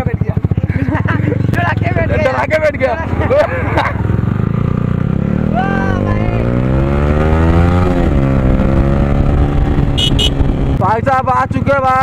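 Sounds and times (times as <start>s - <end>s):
motorcycle engine accelerating: 0.0s - 12.0s.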